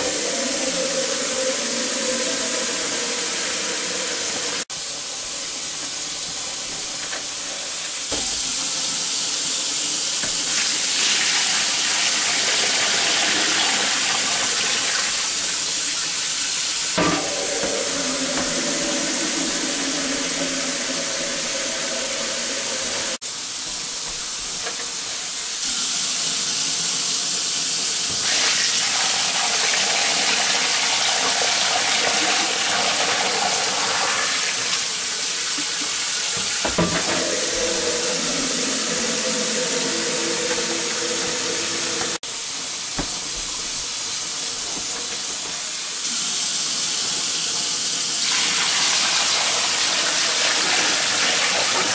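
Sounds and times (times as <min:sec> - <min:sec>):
water pouring into a tub: 0:00.0 - 0:42.2, 0:42.8 - 0:51.9.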